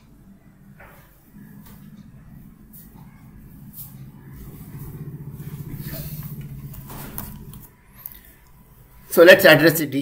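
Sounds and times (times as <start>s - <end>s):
low motor hum: 0.0s - 9.0s.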